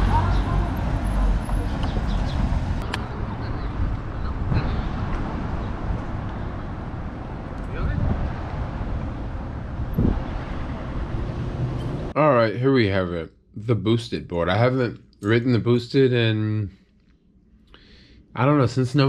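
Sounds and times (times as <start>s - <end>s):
city traffic rumble: 0.0s - 19.0s.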